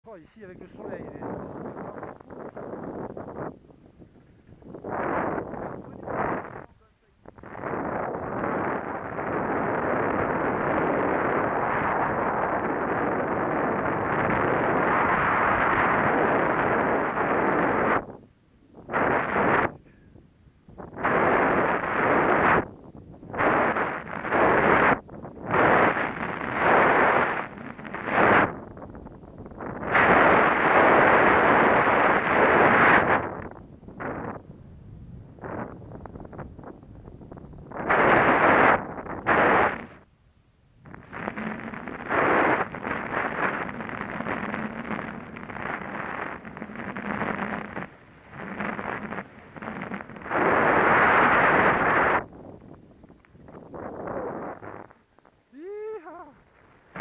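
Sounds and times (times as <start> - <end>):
wind buffeting microphone: 0.1 - 40.1, 40.8 - 57.0
skis hissing through powder snow: 41.0 - 52.3.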